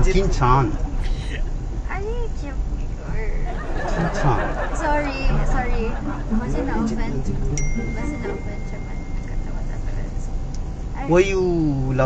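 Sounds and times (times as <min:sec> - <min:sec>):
passengers laughing and talking: 0:00.0 - 0:10.5
road noise rumble: 0:00.0 - 0:12.0
woman speaking: 0:01.0 - 0:10.4.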